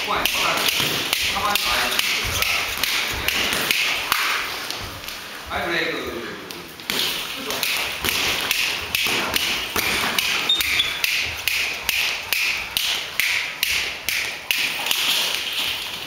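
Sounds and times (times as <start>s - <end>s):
boxing gloves taps and thuds: 0.2s - 5.2s, 6.8s - 15.4s.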